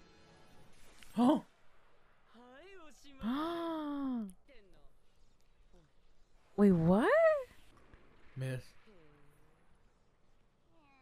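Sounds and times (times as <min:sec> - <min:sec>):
faint cartoon dialogue: 0:01.0 - 0:05.0, 0:05.6 - 0:07.6, 0:10.6 - 0:11.0.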